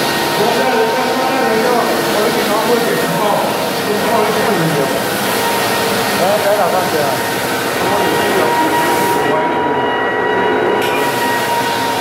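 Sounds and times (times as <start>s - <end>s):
floor drum sander droning: 0.0s - 12.0s.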